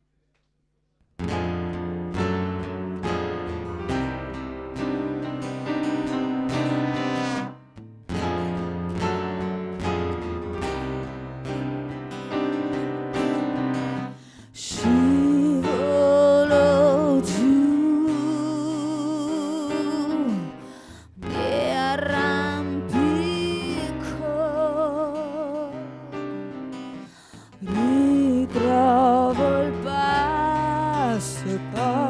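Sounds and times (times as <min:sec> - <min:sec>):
live band playing: 0:04.8 - 0:07.6
woman singing with vibrato: 0:14.5 - 0:26.2, 0:27.5 - 0:32.0.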